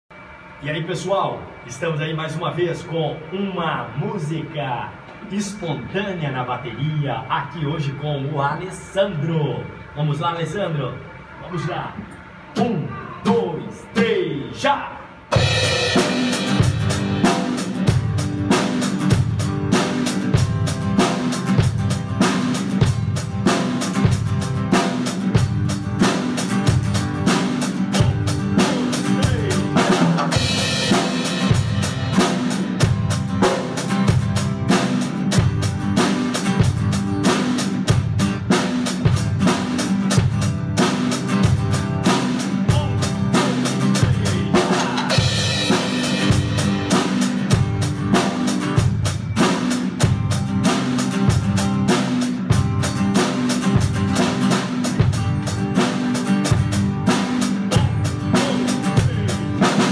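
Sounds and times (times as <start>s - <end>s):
acoustic guitar playing: 15.2s - 59.9s
cymbals ringing: 15.3s - 19.1s, 27.2s - 34.9s, 42.0s - 51.0s
drum kit steady beat: 15.3s - 59.9s.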